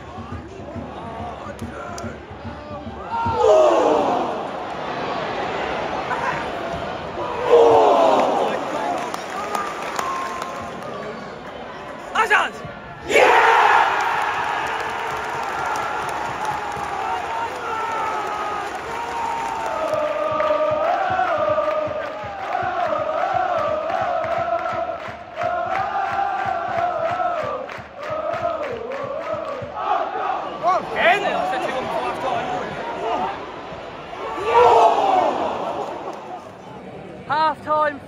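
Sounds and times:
fans chanting in unison: 0:00.0 - 0:10.8, 0:12.9 - 0:36.4
crowd roaring: 0:03.0 - 0:10.8, 0:13.0 - 0:36.5
crowd clapping: 0:07.7 - 0:11.6, 0:13.8 - 0:29.7.

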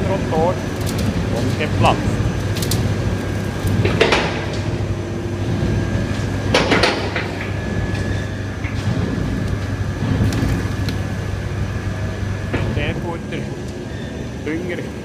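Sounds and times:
diesel engine running: 0:00.0 - 0:15.0
loud clattering knocks: 0:02.4 - 0:04.9, 0:06.4 - 0:11.1.

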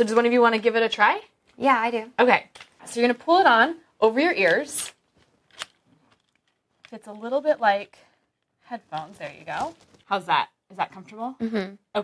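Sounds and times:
plastic headset handling: 0:02.5 - 0:02.8, 0:04.4 - 0:10.1.

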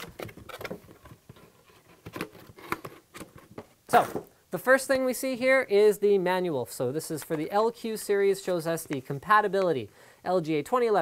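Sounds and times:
cardboard packaging rustling: 0:00.0 - 0:04.3.

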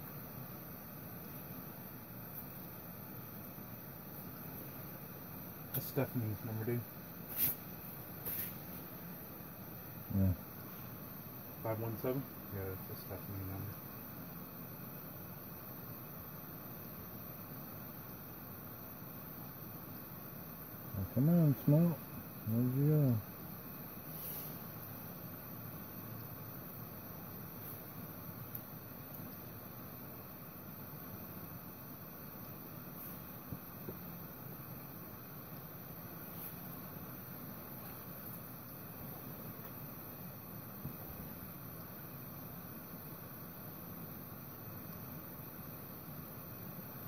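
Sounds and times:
steady low hiss: 0:00.0 - 0:47.0
small ticks: 0:28.4 - 0:29.3, 0:37.8 - 0:38.8.

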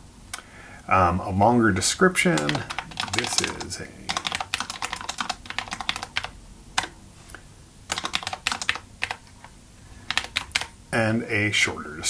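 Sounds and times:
computer keyboard typing: 0:02.3 - 0:07.0, 0:07.9 - 0:09.4, 0:10.0 - 0:10.8.

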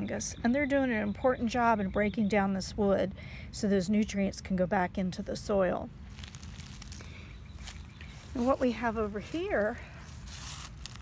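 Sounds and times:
footsteps on dry leaves: 0:05.9 - 0:11.0
faint crackles: 0:06.0 - 0:11.0.

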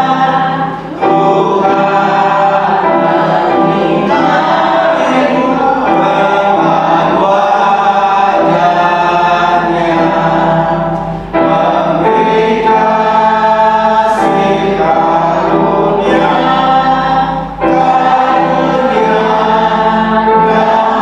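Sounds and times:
choir singing a hymn: 0:00.0 - 0:21.0.

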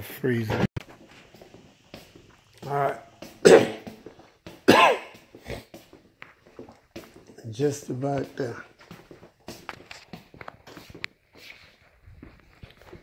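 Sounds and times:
man coughing: 0:03.4 - 0:04.0, 0:04.7 - 0:05.8.

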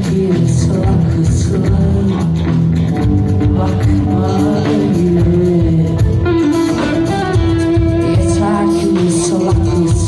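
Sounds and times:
woman singing: 0:00.0 - 0:06.9, 0:07.8 - 0:10.0
rock band playing: 0:00.0 - 0:10.0.

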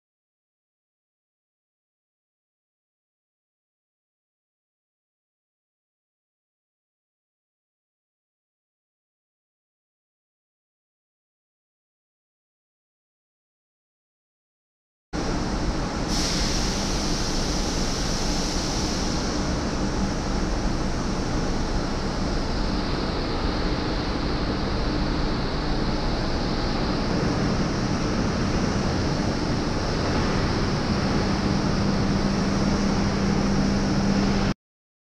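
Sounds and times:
machinery rushing hiss: 0:15.2 - 0:34.5
low machinery hum: 0:15.2 - 0:34.6.

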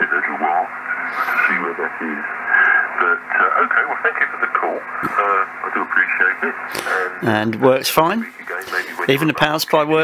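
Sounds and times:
steady low hum: 0:00.0 - 0:10.0
voice over radio loudspeaker: 0:00.0 - 0:10.0.

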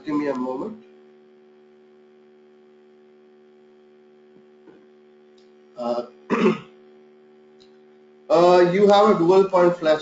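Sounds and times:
steady low hum: 0:00.0 - 0:10.0
man clearing his throat: 0:05.8 - 0:06.8.

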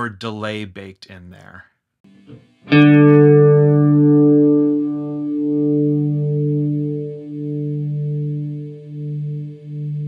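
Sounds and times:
wavering electric guitar chord: 0:02.1 - 0:10.0.

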